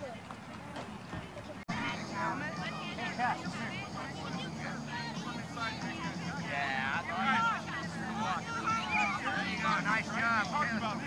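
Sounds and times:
faint background voices: 0.0 - 11.0
louder nearer voices: 1.7 - 11.0.

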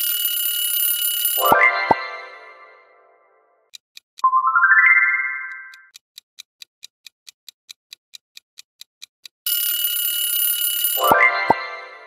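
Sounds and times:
alarm clock ringing: 0.0 - 2.8, 9.5 - 12.0
timer ticking: 1.4 - 2.8, 3.7 - 9.7
rising chime: 1.4 - 3.0, 4.3 - 5.8.

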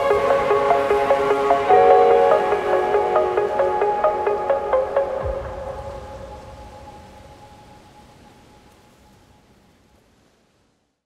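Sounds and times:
held music chord: 0.0 - 6.0.

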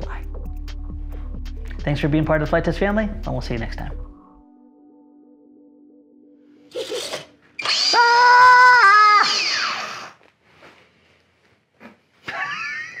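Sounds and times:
person laughing: 6.7 - 7.3, 12.2 - 13.0
electric motor high whine: 7.6 - 8.3.

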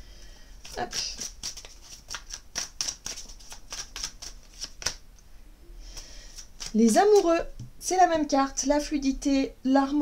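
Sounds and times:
cards being shuffled: 0.6 - 5.0, 6.0 - 7.3.

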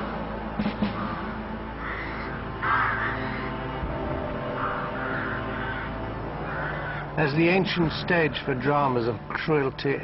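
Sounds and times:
eerie sustained music: 0.0 - 10.0
crow calling: 0.8 - 8.4.

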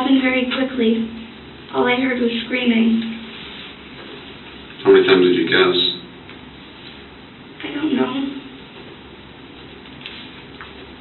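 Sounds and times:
low room tone hiss: 0.0 - 11.0
man talking: 4.8 - 6.1.

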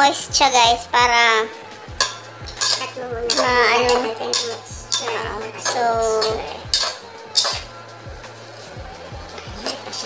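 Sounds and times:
background music: 0.0 - 10.0
spoon stirring in metal pot: 1.9 - 10.0
spoon clinking against pot: 2.0 - 7.7.

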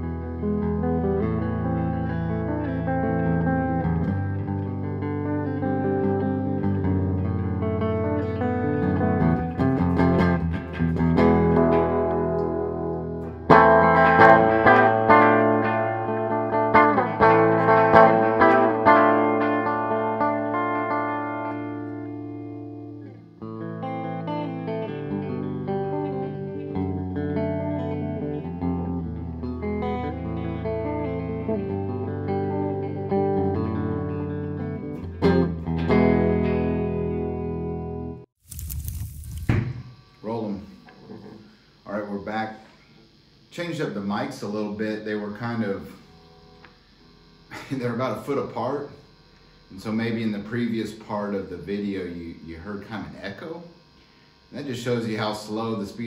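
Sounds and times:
clean electric guitar playing: 0.0 - 39.0, 44.1 - 53.9.

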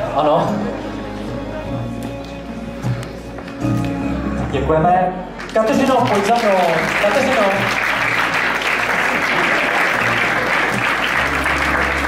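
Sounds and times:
music with sustained notes: 0.0 - 12.0.

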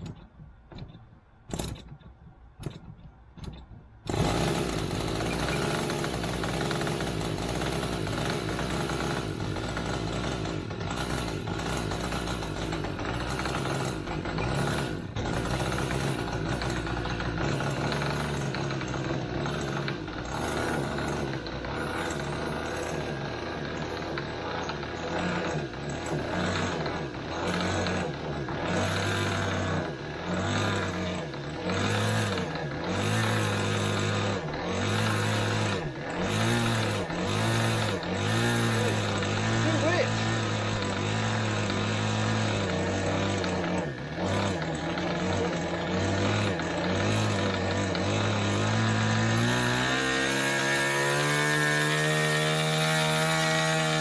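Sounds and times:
electric starter spinning: 0.0 - 54.0
model plane engine running: 4.1 - 52.6.

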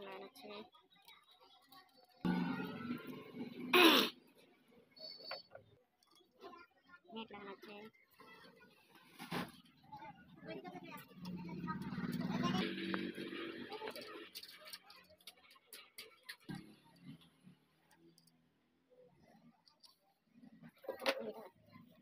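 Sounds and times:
metal parts clicking and knocking: 14.0 - 17.0.

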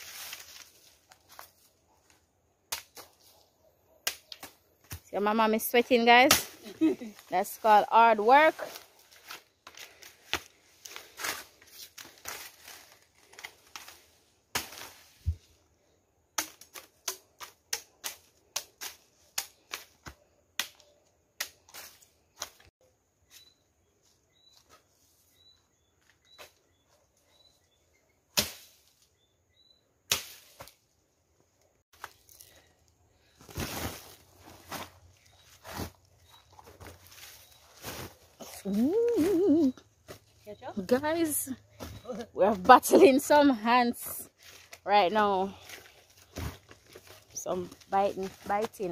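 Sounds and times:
machete chopping sugar cane: 6.2 - 6.7, 14.5 - 15.0, 16.4 - 20.8, 28.4 - 28.8, 30.1 - 30.7.

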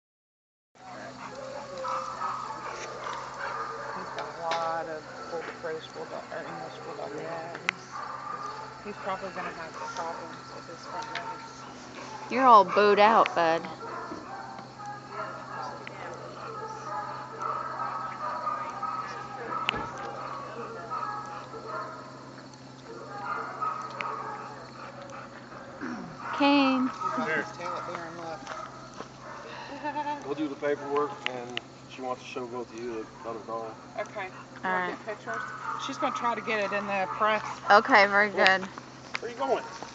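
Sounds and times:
people's voices: 0.9 - 13.8, 15.0 - 22.1, 22.8 - 28.6.

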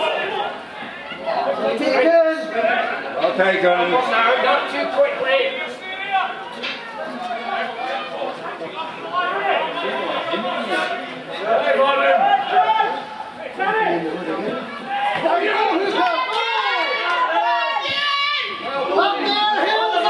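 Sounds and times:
people shouting and calling: 0.0 - 20.0.

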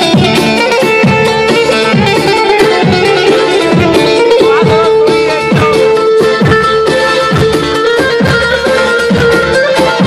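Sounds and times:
plucked-string lead melody: 0.0 - 10.0
steady drum beat: 0.0 - 10.0.

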